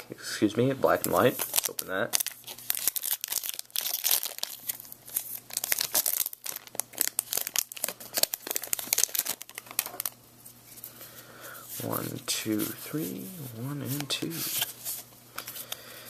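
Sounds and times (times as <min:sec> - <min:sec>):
foil wrapper tearing and crinkling: 0:01.0 - 0:10.2.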